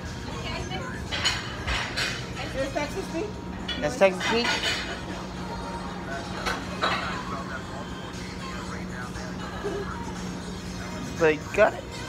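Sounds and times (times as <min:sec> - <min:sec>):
background music: 0:00.0 - 0:12.0
steady low hum: 0:00.0 - 0:12.0.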